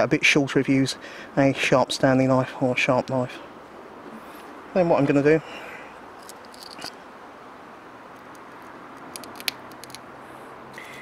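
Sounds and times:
background hiss: 0:00.1 - 0:09.1.

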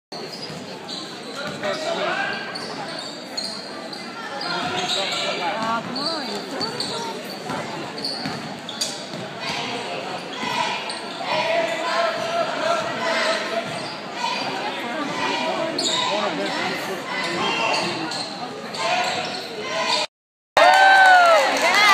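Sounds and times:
chatter and shouts: 0:00.2 - 0:20.1.

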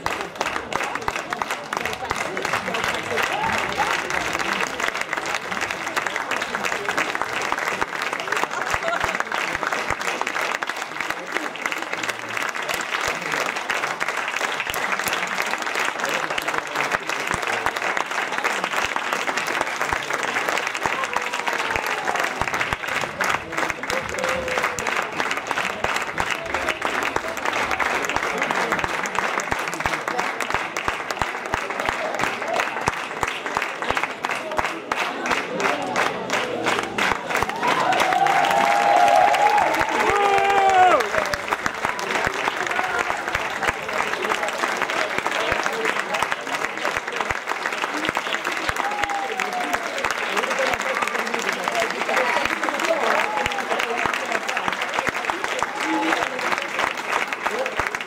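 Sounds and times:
audience applauding: 0:00.0 - 0:58.0.

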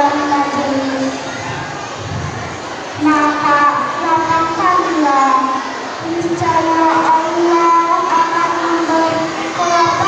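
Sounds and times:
child chanting recitation: 0:00.0 - 0:10.0.

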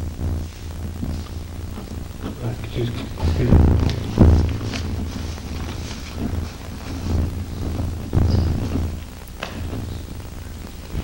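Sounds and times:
low electrical hum: 0:00.0 - 0:11.0
microphone handling bumps: 0:00.0 - 0:11.0.

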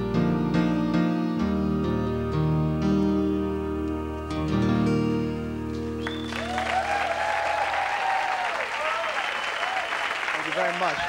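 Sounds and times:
guitar and keyboard chord: 0:00.0 - 0:06.3
audience applause and cheering: 0:06.0 - 0:11.0.

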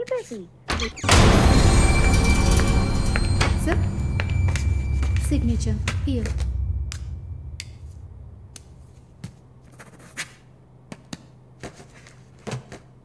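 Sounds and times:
steady low hum: 0:01.1 - 0:09.6.

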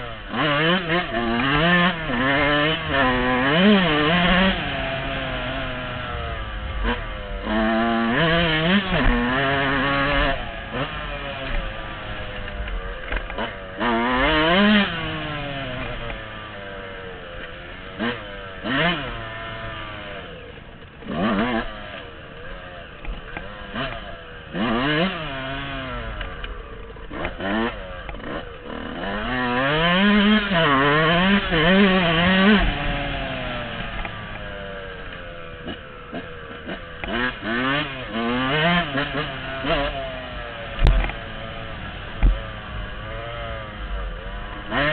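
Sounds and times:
dirt bike engine revving: 0:00.0 - 0:44.9.

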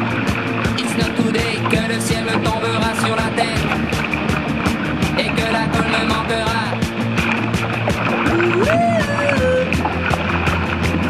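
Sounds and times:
soundtrack music with drumbeat: 0:00.0 - 0:11.0.

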